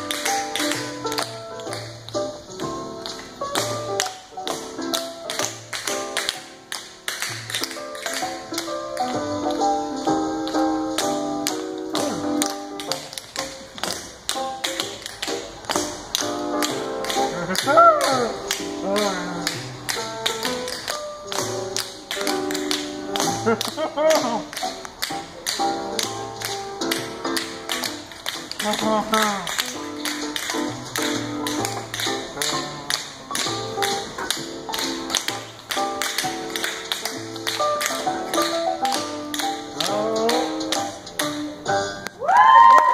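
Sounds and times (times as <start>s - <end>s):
recorded music: 0.0s - 42.9s.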